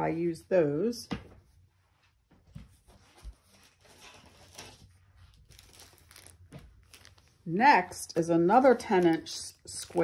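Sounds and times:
packaging rustling and crinkling: 3.4s - 7.5s.

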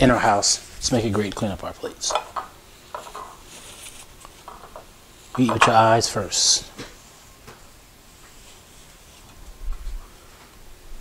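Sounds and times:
cloth wiping a plate: 8.1s - 10.3s.

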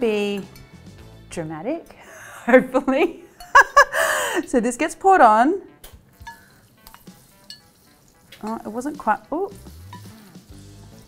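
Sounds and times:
hot oil sizzling: 5.8s - 11.0s.

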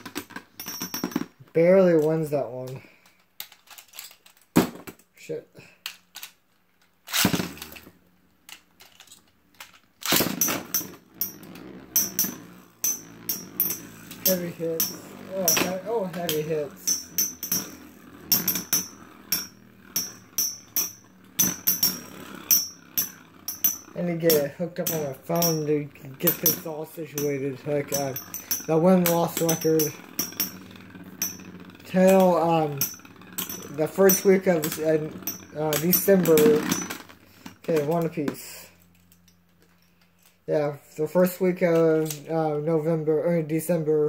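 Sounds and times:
spinning tops clashing metallic clacks: 7.0s - 38.1s.

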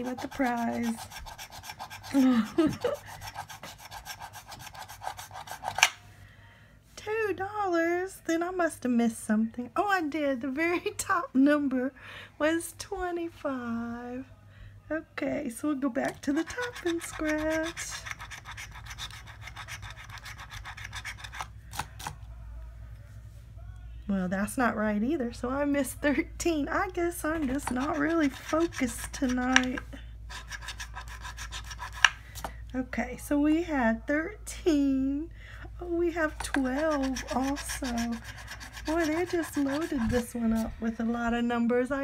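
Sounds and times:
coin scratching lottery ticket: 0.0s - 5.8s, 16.3s - 21.5s, 27.4s - 29.6s, 30.3s - 32.0s, 36.4s - 40.3s.

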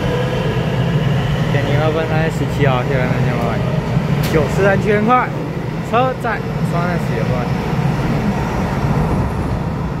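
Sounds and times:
train wheels rumbling on rail: 0.0s - 10.0s.

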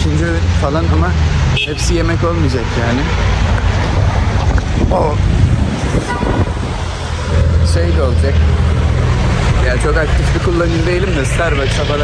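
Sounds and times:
street traffic: 0.0s - 12.0s
wind buffeting microphone: 3.2s - 7.7s.

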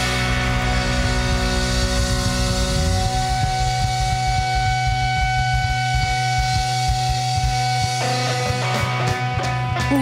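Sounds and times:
bass note: 0.0s - 10.0s
electric guitar sustained note: 0.0s - 10.0s.

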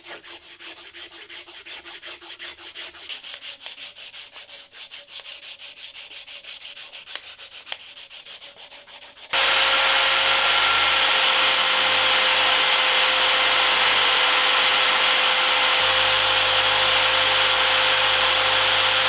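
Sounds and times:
sandpaper sanding wood: 0.0s - 19.0s
powered buffing wheel running: 9.3s - 19.0s.

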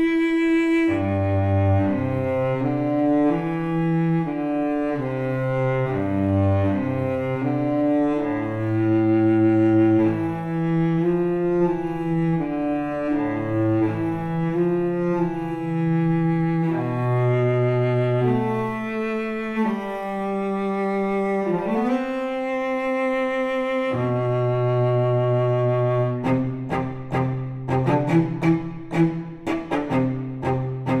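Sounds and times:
bowed cello sustained notes: 0.0s - 31.0s.

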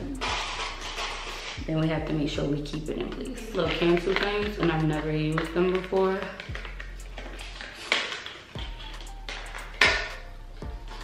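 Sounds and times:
package rustling and crinkling: 0.0s - 1.7s, 3.0s - 10.2s
soft background music: 0.0s - 11.0s.

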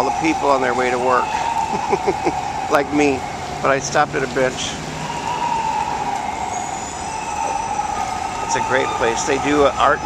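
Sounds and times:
city street traffic: 0.0s - 10.0s.

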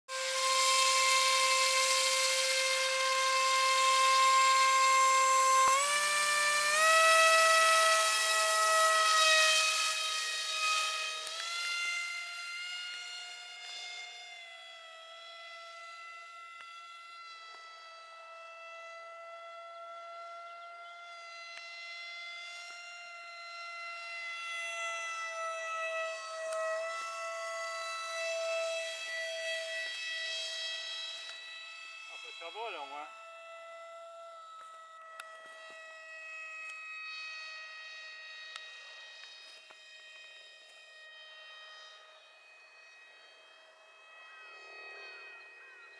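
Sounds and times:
electric motor propeller whine: 0.1s - 45.9s.

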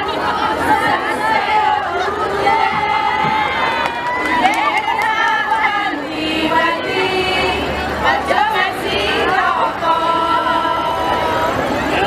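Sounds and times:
large crowd noise: 0.0s - 12.0s
women chanting a cheer: 0.0s - 12.0s.

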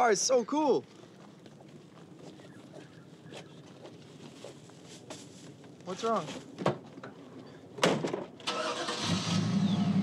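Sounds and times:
thump: 7.8s - 8.3s
car starter cranking: 8.4s - 9.7s
car engine starting: 8.4s - 10.0s.

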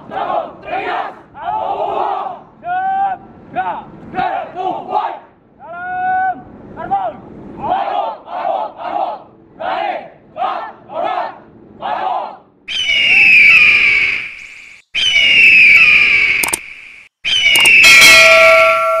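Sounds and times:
group shouting a chant: 0.0s - 2.8s, 7.6s - 12.4s
loud falling screeches: 12.7s - 19.0s
ringing chime: 17.8s - 19.0s.

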